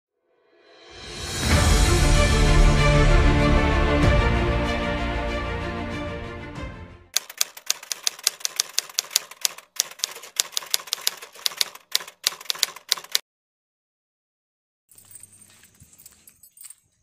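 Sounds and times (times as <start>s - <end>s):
music: 0.2s - 7.1s
typewriter key clicks: 7.2s - 13.2s.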